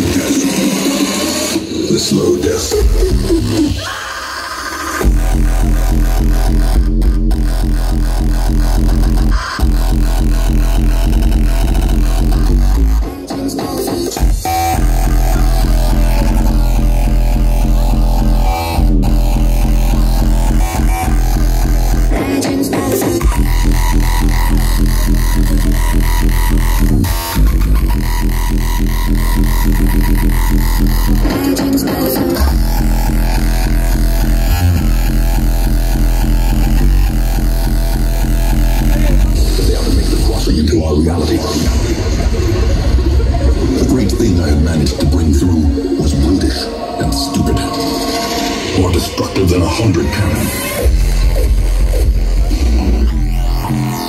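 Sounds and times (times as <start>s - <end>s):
electronic dance music: 0.0s - 54.0s.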